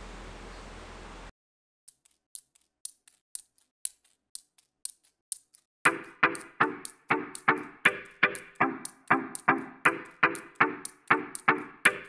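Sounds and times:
high sharp clicks: 0:01.9 - 0:12.0
music beat: 0:05.8 - 0:12.0.

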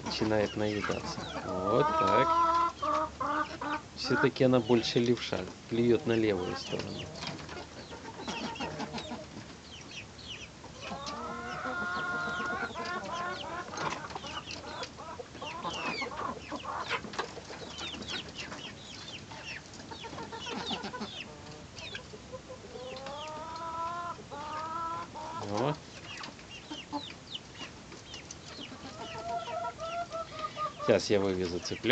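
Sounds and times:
chickens clucking: 0:00.0 - 0:31.9
chicks peeping: 0:00.0 - 0:31.9.

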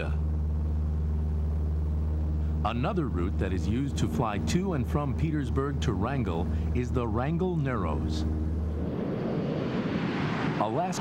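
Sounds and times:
aircraft engine drone: 0:00.0 - 0:11.0.

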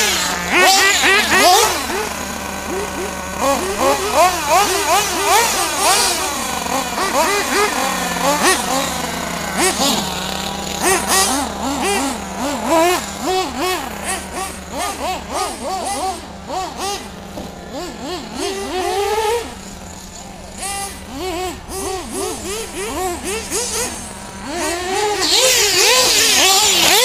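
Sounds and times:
radio-controlled cars revving: 0:00.0 - 0:27.0
steady low engine tone: 0:00.0 - 0:27.0.

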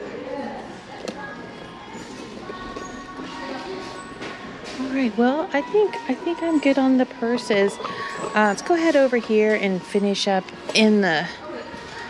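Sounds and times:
distant voices: 0:00.0 - 0:12.0
faint music over shop speakers: 0:00.0 - 0:12.0.

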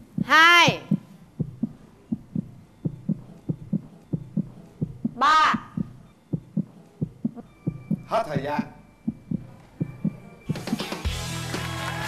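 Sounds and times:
heartbeat double thump: 0:00.0 - 0:10.9.

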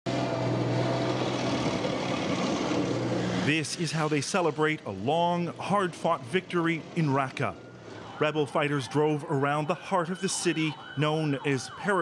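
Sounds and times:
tank engine driving by: 0:00.1 - 0:08.6.

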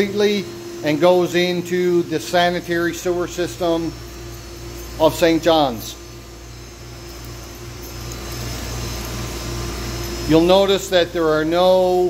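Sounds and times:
low hum with steady tone: 0:00.0 - 0:12.0.

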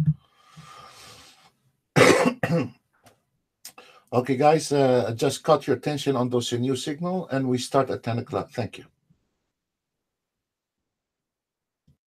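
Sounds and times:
man clearing his throat: 0:02.0 - 0:02.8
man's low throat sound: 0:02.0 - 0:02.8.

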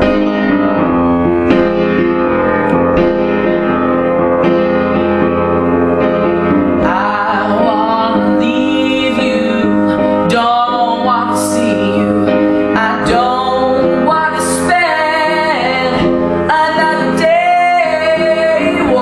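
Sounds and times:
upright piano chords: 0:00.0 - 0:19.0.

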